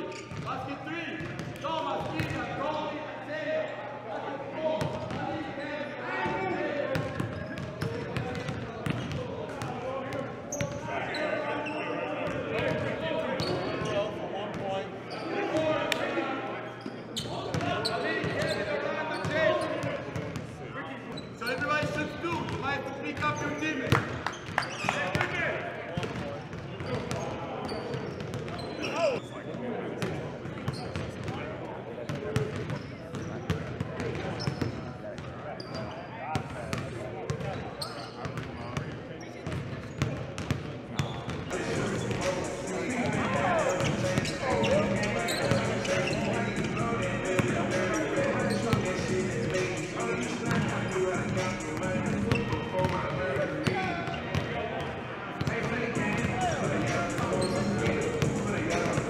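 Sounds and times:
basketballs bouncing on gym floor: 6.9 - 9.6
indistinct talking and calls: 41.5 - 52.5, 56.0 - 59.0.

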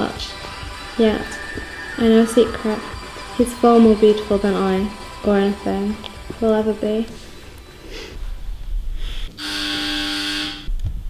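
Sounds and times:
held musical note: 0.0 - 8.5.

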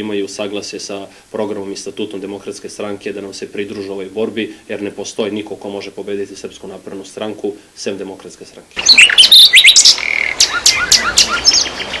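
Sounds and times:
small birds chirping: 8.8 - 12.0.

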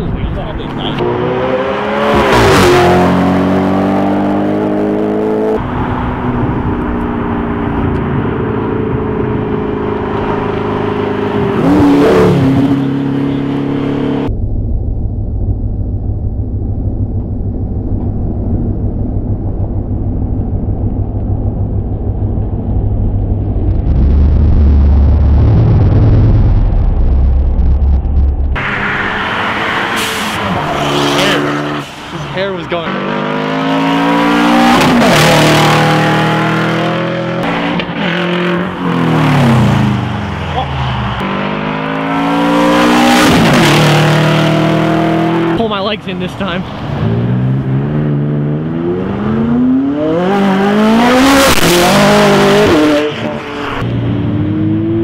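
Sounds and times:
cars accelerating past: 0.3 - 14.3, 28.6 - 45.7, 46.6 - 55.0
steady low rumble: 14.2 - 28.8.

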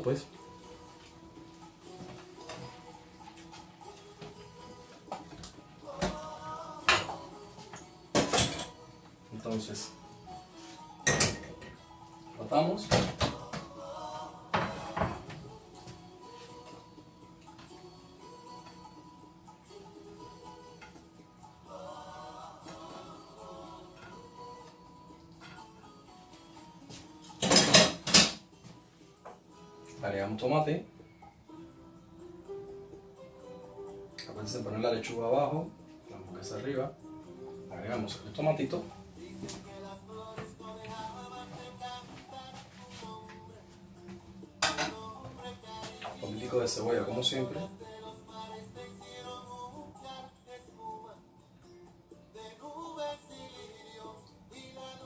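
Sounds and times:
background music: 0.0 - 55.0
plate and utensils clattering: 8.2 - 8.8, 11.0 - 11.8, 27.4 - 28.4, 44.6 - 45.1.

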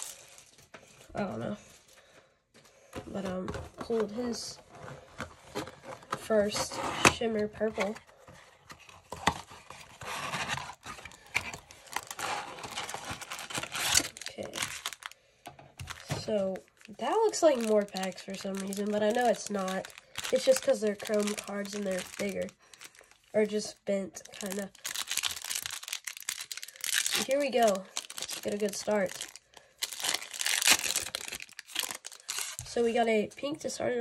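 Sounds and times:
foil wrapper tearing and crinkling: 0.0 - 0.6, 9.9 - 15.2, 15.8 - 23.2, 24.2 - 32.8
packs scraping and rustling: 8.9 - 15.2.

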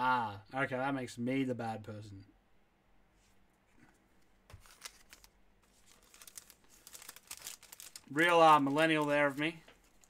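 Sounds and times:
packaging crinkling: 4.5 - 10.0.

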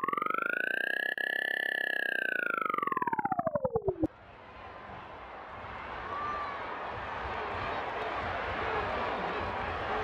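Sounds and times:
pulsing electronic tone sweeping: 0.0 - 4.1.

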